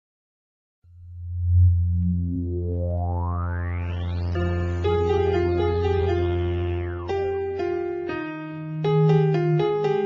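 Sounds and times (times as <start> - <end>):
low electronic drone: 0.9 - 7.3.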